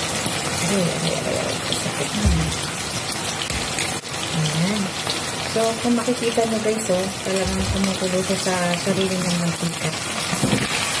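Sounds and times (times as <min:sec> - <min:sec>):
food sizzling in frying pan: 0:00.0 - 0:11.0.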